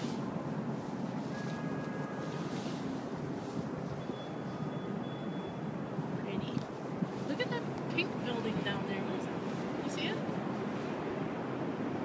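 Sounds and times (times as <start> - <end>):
wind buffeting microphone: 1.8 - 12.0.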